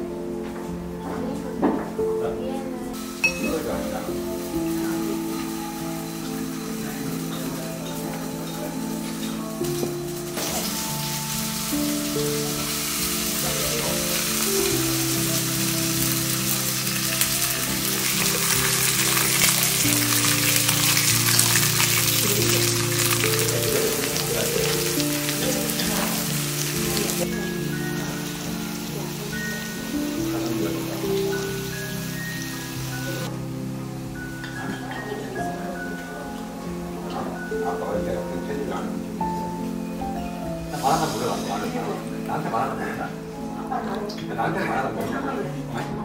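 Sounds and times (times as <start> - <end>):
background music: 0.0 - 46.0
beef sizzling in a pan: 3.0 - 37.6, 38.8 - 44.2.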